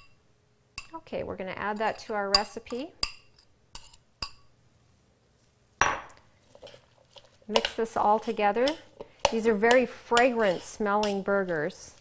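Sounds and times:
spoon clinking against ceramic bowl: 1.8 - 4.5.

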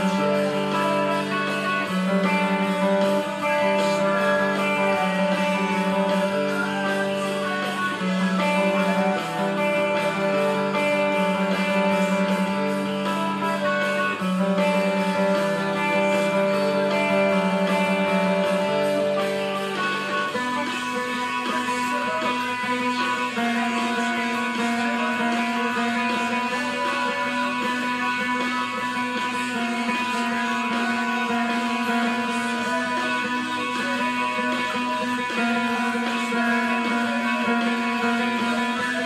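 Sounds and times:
electric guitar chords: 0.0 - 39.0.

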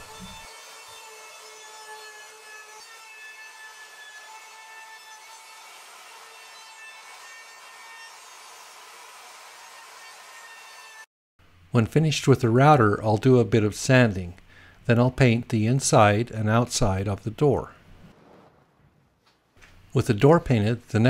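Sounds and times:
wood router whining: 0.0 - 11.1.

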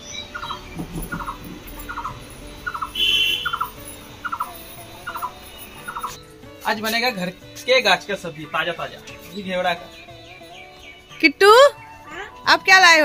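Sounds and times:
higher bird chirp: 0.0 - 6.4, 8.8 - 12.6
bird rattled call: 0.3 - 4.5.

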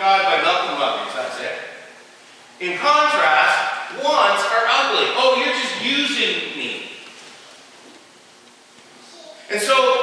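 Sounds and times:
faint microphone hiss: 0.0 - 10.0.

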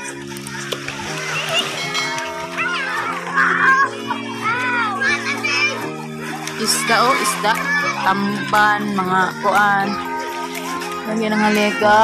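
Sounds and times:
background music with held notes: 0.0 - 12.0
children calling out: 0.0 - 12.0.

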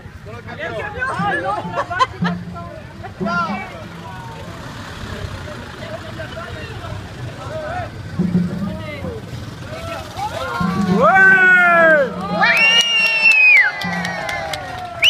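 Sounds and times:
truck engine rumbling past: 0.0 - 15.0
people talking: 0.2 - 13.0.

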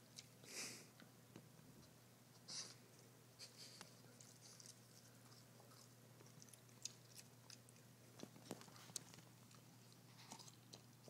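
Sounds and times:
dog chewing potato crunches: 4.0 - 11.0.

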